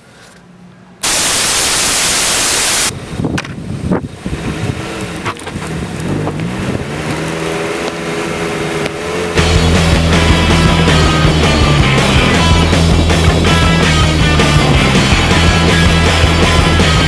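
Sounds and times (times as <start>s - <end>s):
static white noise burst: 1.0s - 2.9s
wind on microphone: 2.8s - 7.1s
longboard wheels rolling on asphalt: 2.9s - 11.2s.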